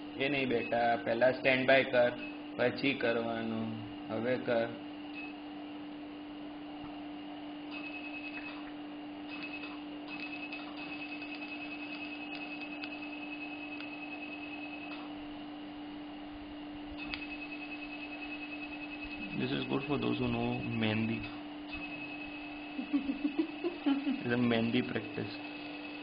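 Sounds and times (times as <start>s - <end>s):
steady low hum: 0.0s - 26.0s
high rapid pulsed beep: 20.5s - 22.9s.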